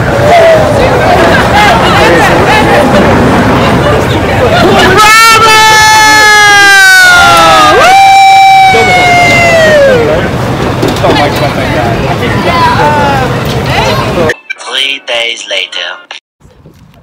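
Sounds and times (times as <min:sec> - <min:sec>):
people screaming: 0:00.0 - 0:03.2, 0:04.4 - 0:10.3, 0:12.4 - 0:13.4
crowd murmur: 0:00.0 - 0:05.4, 0:08.5 - 0:14.4.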